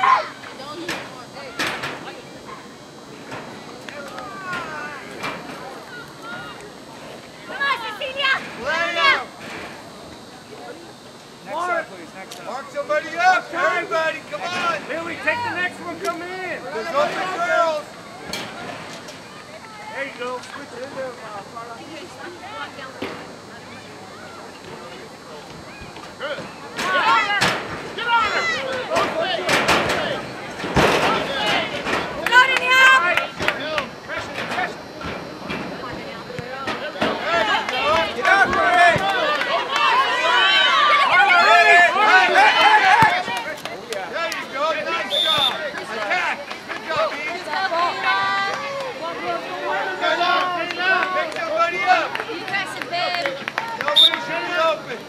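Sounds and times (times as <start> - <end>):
people shouting and calling: 0.0 - 3.0, 3.7 - 9.4, 12.5 - 55.0.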